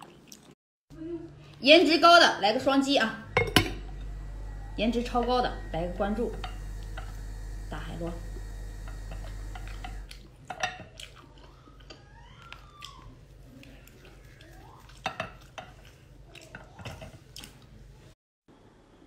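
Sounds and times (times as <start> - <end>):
chewing and wet mouth smacks: 0.0 - 0.6, 10.1 - 16.5, 17.3 - 17.7
low steady hum: 0.9 - 12.8.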